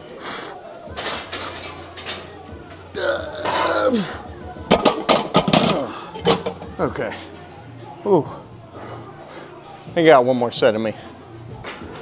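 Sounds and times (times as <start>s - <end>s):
man grunting and groaning: 3.0s - 4.2s.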